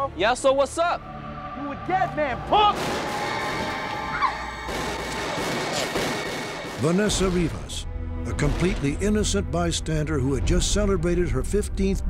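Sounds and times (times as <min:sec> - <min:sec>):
dramatic music: 0:00.0 - 0:12.0
short rising cry: 0:01.0 - 0:05.4.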